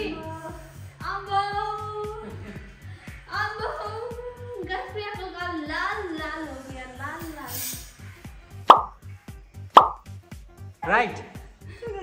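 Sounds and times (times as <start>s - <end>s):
background music with low beat: 0.0s - 12.0s
cartoon plop sound effects: 8.7s - 9.0s, 9.8s - 10.0s.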